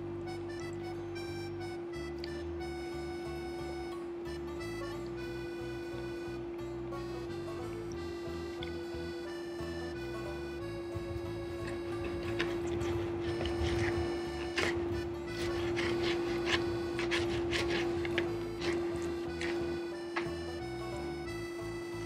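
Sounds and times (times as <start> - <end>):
background music: 0.0 - 22.0
steady hum: 0.0 - 22.0
knife and fork scraping plate: 11.6 - 20.3.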